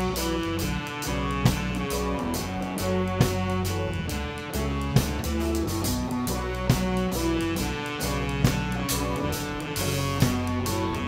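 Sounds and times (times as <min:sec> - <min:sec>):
baritone saxophone notes: 0:00.0 - 0:11.0
rock band playing: 0:00.0 - 0:11.0.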